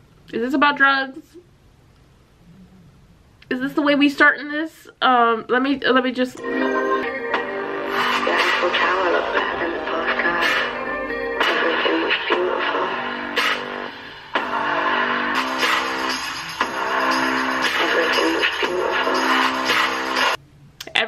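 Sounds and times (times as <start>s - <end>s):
pop song with vocals: 6.4s - 20.4s.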